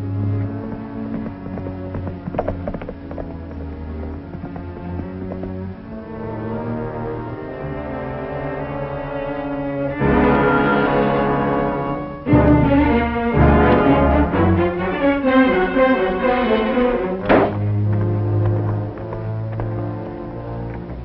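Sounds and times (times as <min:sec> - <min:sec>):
orchestral film music with strings: 0:00.0 - 0:21.0.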